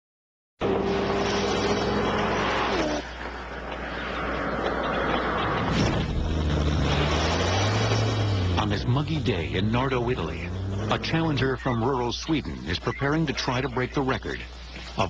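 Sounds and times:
supercar engine at speed: 0.6 - 14.0.

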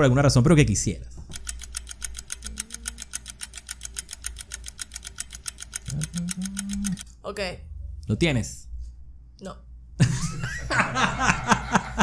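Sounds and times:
steady low hum: 0.0 - 12.0
rapid even ticking: 1.3 - 7.2.

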